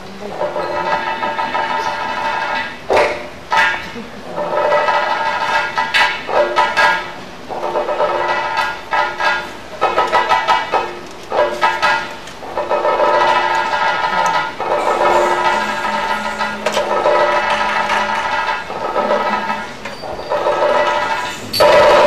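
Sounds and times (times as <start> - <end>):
sharp percussion strokes: 0.4 - 22.0.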